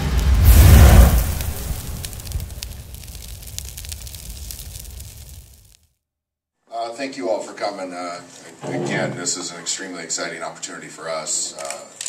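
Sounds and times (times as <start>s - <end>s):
deep boom: 0.0s - 5.6s
crackling sparkling tail: 0.0s - 5.8s.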